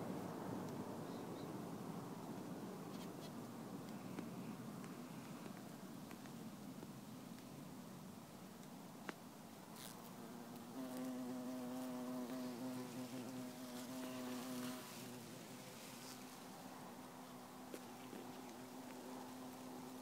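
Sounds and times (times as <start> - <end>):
bumblebee buzzing in flight: 9.8 - 15.4.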